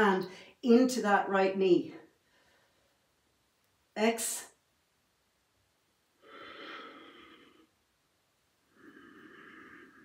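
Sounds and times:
woman breathing: 0:02.1 - 0:03.2, 0:06.2 - 0:07.9, 0:08.6 - 0:10.0.

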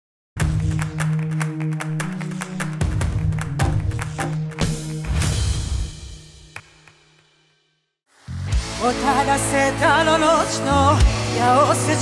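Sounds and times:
jingle music with fast beat: 0:00.4 - 0:07.1.

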